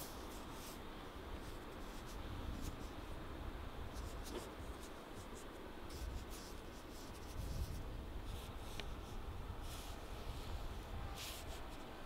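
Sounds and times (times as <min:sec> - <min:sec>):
ink brush swishing on paper: 0:04.0 - 0:10.5, 0:11.1 - 0:11.9.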